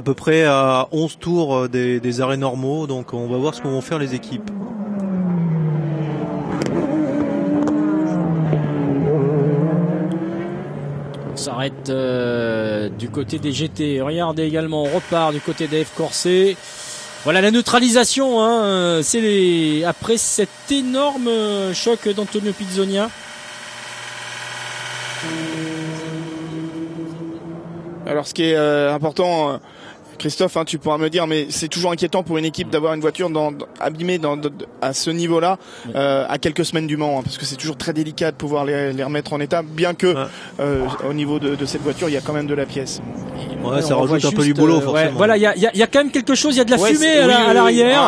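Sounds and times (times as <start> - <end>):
race car engines running: 4.0 - 28.1
low hum: 14.4 - 28.4.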